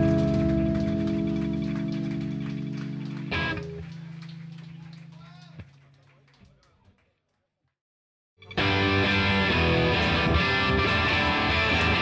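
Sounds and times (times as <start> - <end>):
electric guitar and bass chord ringing: 0.0 - 4.6, 8.4 - 12.0.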